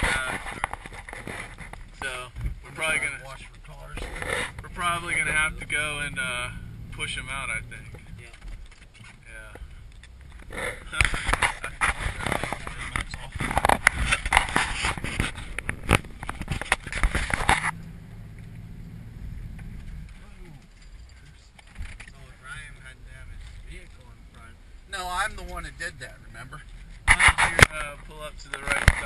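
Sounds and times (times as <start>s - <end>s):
rough scraping and crackling: 0.0s - 29.0s
vehicle engine humming: 0.0s - 29.0s.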